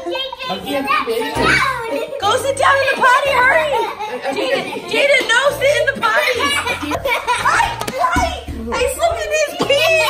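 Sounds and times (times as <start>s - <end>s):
child making wordless sounds: 0.0s - 2.2s.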